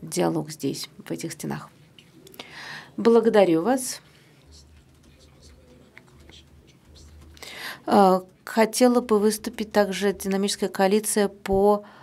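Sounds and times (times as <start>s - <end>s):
woman speaking: 0.0s - 1.8s, 3.0s - 4.1s, 7.8s - 11.9s
faint hum: 0.0s - 12.0s
breathy noise: 4.1s - 7.9s.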